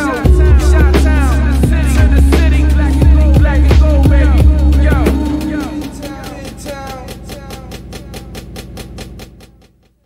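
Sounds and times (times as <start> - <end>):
hip hop instrumental: 0.0 - 10.0.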